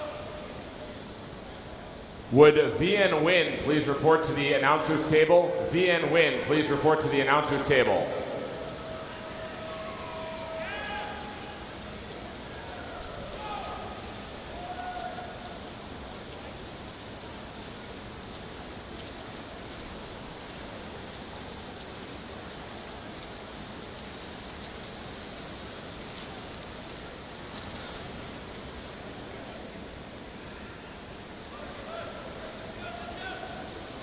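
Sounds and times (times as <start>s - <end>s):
reverberant crowd: 0.0s - 16.7s
swimmers splashing: 0.0s - 34.0s.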